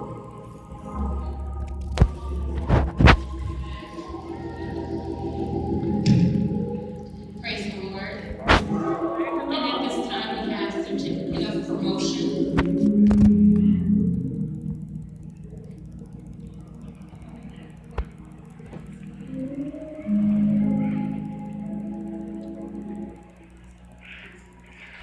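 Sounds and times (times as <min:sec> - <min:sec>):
organ sustained chords: 0:00.0 - 0:25.0.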